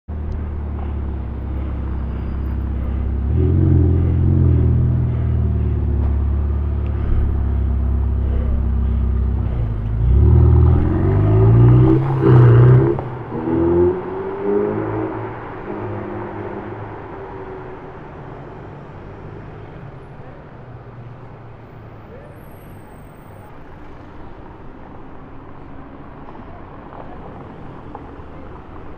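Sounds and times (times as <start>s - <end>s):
car engine accelerating: 0.1s - 24.6s.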